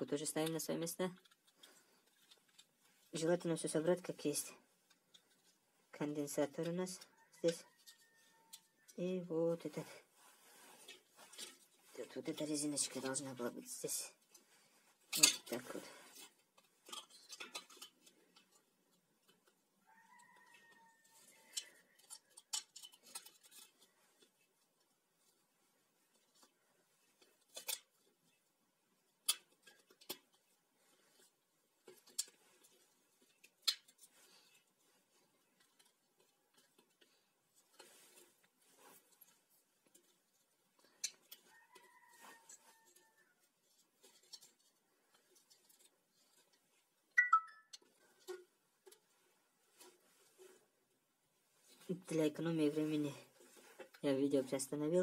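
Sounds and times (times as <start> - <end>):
plastic and wire clicking: 0.4 - 2.8, 15.1 - 24.5, 26.1 - 28.4, 29.2 - 34.7.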